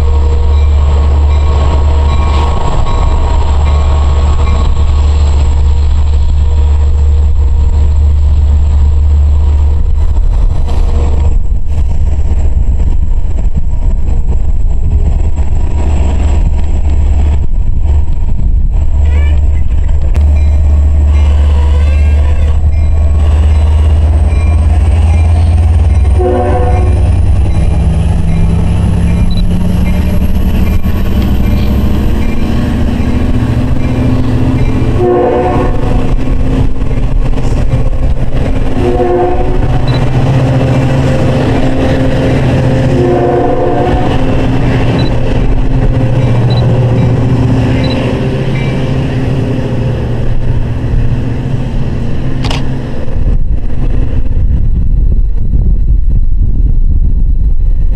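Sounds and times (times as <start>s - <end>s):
diesel locomotive engine rumble: 0.0s - 57.9s
locomotive horn blasts: 25.3s - 27.4s, 34.9s - 36.0s, 38.8s - 39.9s, 42.8s - 44.4s.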